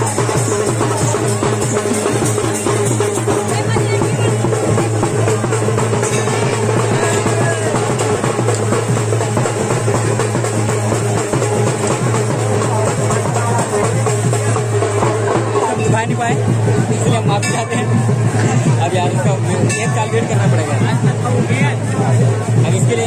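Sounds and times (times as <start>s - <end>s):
fast drumming: 0.0s - 23.0s.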